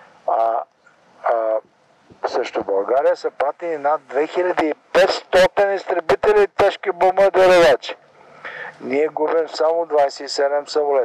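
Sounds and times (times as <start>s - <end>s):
man's voice through megaphone: 0.3s - 1.6s, 2.2s - 11.0s.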